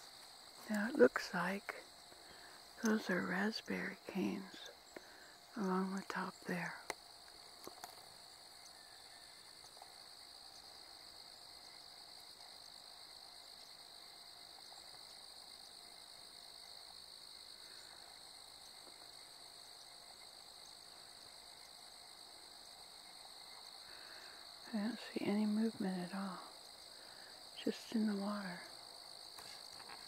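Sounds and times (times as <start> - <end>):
insects buzzing: 0.0 - 30.0.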